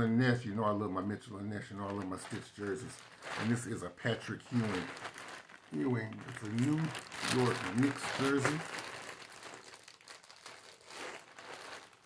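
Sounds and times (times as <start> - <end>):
plastic bag crinkling: 1.6 - 12.0.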